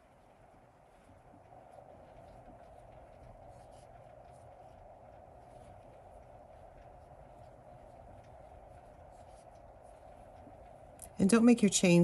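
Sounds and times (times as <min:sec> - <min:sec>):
low background noise: 0:00.0 - 0:12.0
yarn rubbing over crochet hook: 0:00.9 - 0:11.8.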